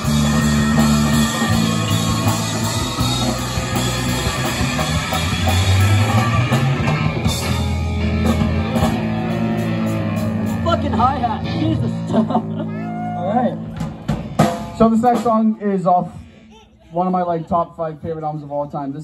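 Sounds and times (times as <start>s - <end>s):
live rock band playing: 0.0s - 15.6s.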